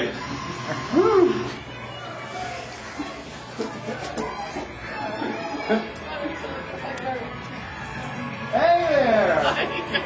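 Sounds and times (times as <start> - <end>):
steady background noise: 0.0 - 10.0.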